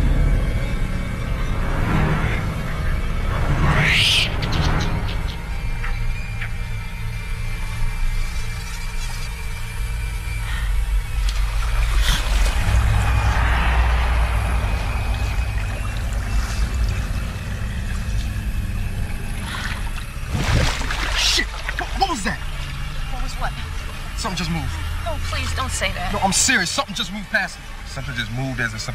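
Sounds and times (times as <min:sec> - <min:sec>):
suspenseful music drone: 0:00.0 - 0:28.9
water sloshing and trickling: 0:05.8 - 0:28.9.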